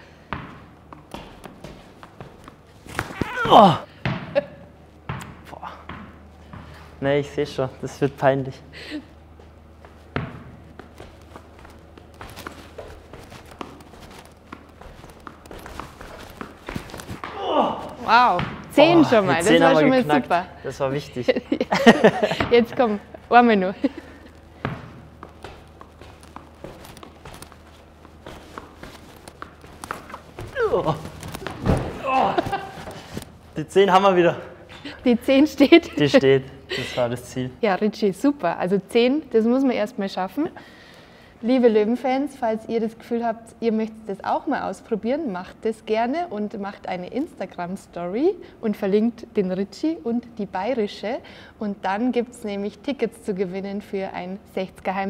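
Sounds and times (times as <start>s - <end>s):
ball tapping on shoe: 10.0s - 17.4s, 24.3s - 30.6s.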